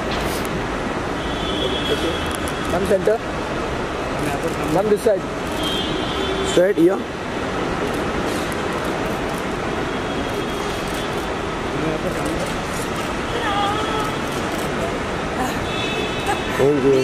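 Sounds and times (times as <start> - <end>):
traffic noise: 0.0 - 17.0.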